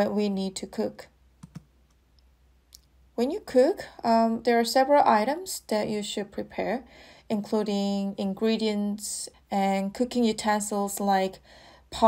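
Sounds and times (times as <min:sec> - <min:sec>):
soft clicks: 0:01.4 - 0:02.9.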